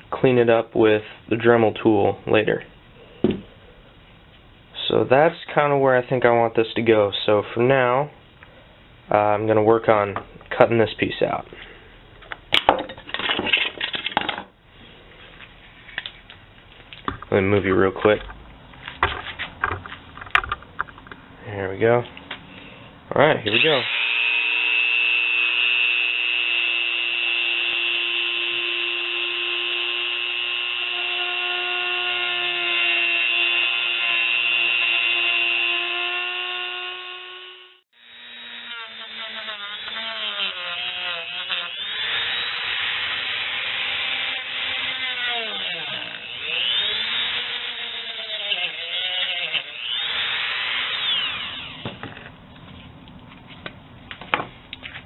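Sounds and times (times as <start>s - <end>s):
rotary tool cutting plastic sheet: 25.0s - 52.0s.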